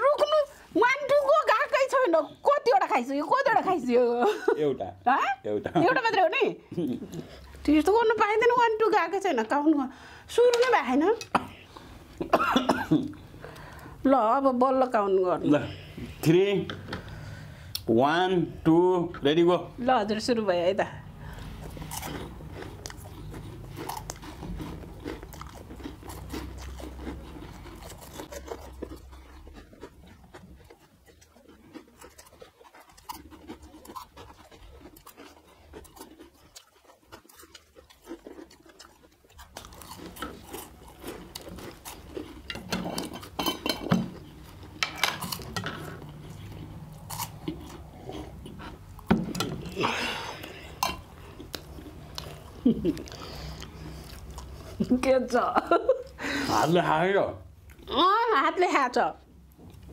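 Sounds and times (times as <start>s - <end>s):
people crunching snacks: 21.2s - 55.1s.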